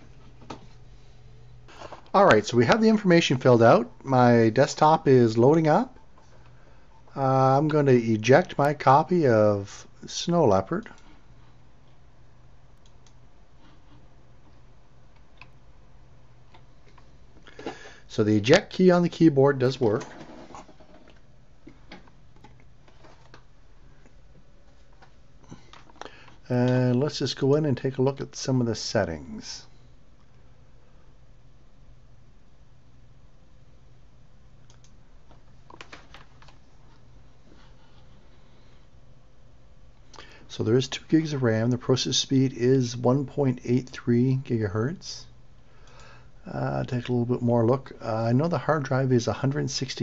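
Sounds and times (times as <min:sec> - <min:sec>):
low steady hum: 0:00.0 - 0:50.0
faint clicks: 0:12.7 - 0:13.2, 0:34.6 - 0:37.1.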